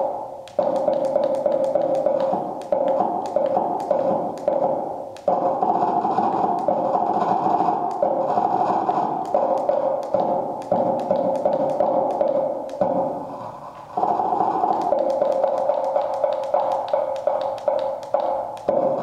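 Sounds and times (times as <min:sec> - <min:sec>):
computer-generated taps and scraping: 0:00.4 - 0:19.0.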